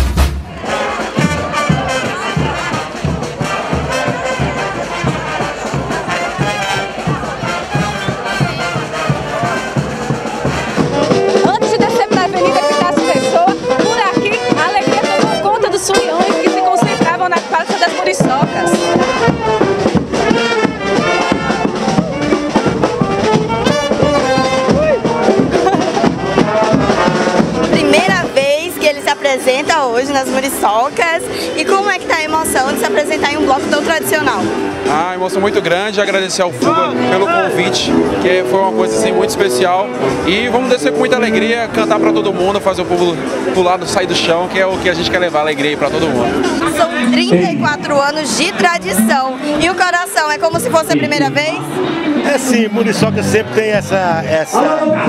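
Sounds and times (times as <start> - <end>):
brass band music: 0.0 - 55.0
crowd: 0.0 - 55.0.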